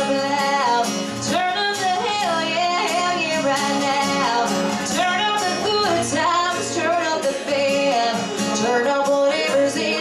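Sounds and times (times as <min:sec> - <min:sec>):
acoustic guitar: 0:00.0 - 0:10.0
women singing country song: 0:00.0 - 0:10.0.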